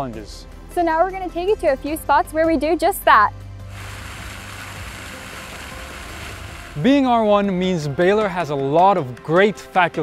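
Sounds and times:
fountain jets splashing: 0:03.7 - 0:07.3.

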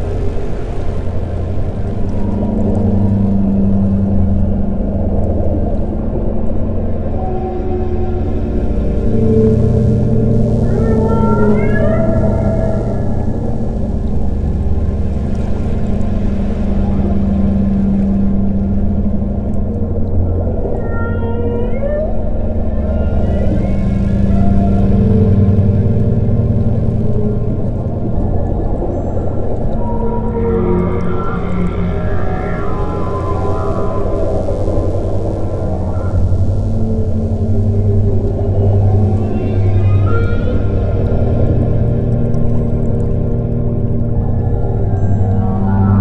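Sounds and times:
ambient drone music: 0:00.0 - 0:46.0
whale song calls: 0:07.0 - 0:15.0, 0:15.7 - 0:46.0.

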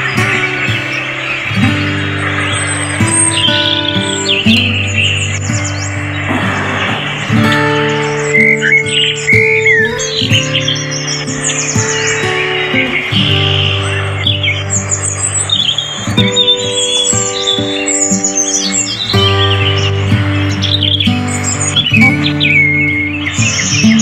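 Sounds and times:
bird chirps: 0:00.0 - 0:24.0
calm music of held chords: 0:00.0 - 0:24.0.

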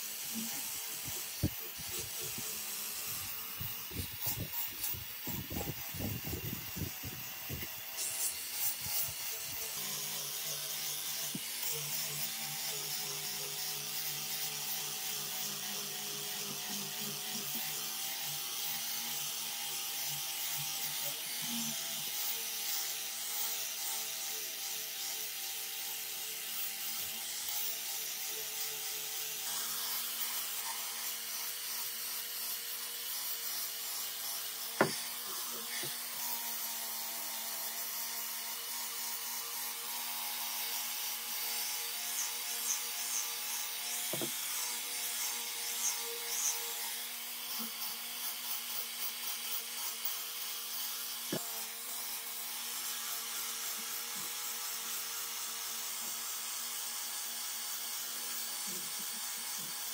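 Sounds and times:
angle grinder sanding wood: 0:00.0 - 0:59.9.

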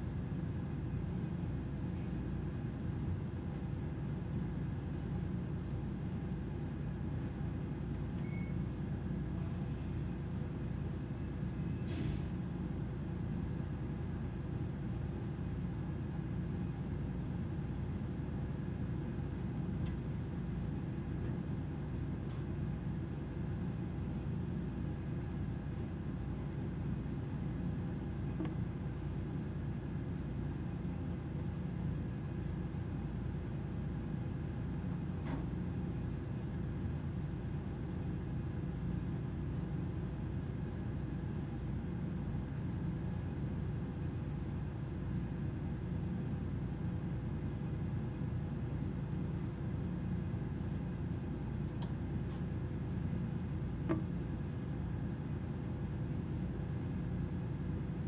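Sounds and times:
faint constant hum: 0:00.0 - 0:58.0
low mechanical rumble: 0:00.0 - 0:58.0
faint tick: 0:51.8 - 0:52.4.

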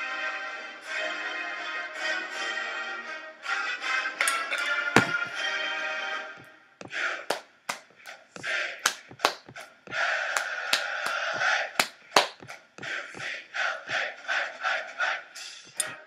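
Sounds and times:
hands clapping: 0:07.3 - 0:12.6.

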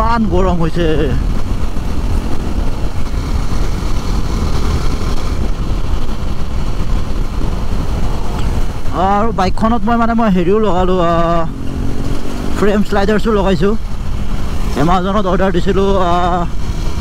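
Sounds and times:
motorcycle engine cruising: 0:00.0 - 0:17.0
wind rushing on microphone: 0:00.0 - 0:17.0.

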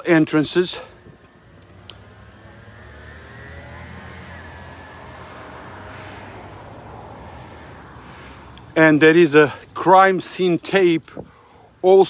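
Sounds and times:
vehicle engine rumble: 0:00.0 - 0:12.0
faint rising whine: 0:00.8 - 0:09.1.

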